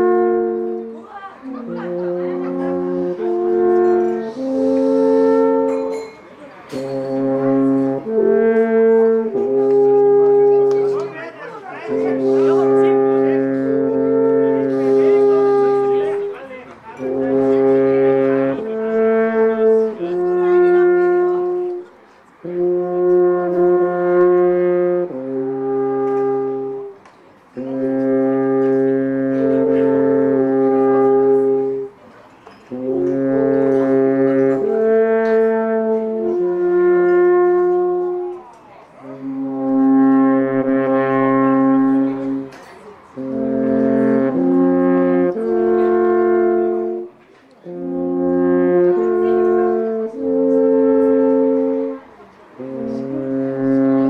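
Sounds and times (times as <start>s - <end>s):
alphorns playing a duet: 0.0s - 54.0s.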